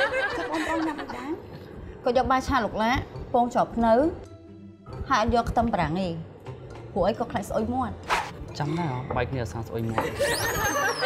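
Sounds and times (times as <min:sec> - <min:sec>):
people conversing: 0:00.4 - 0:10.7.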